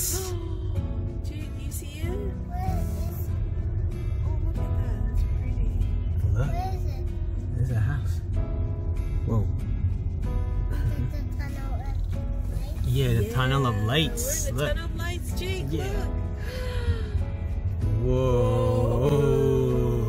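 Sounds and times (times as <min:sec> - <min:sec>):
car road noise rumble: 0:00.0 - 0:20.0
instrumental christmas music: 0:10.4 - 0:20.0.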